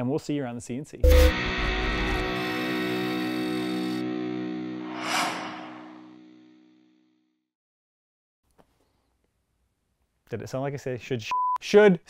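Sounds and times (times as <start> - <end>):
short hissing swell: 4.8 - 6.2.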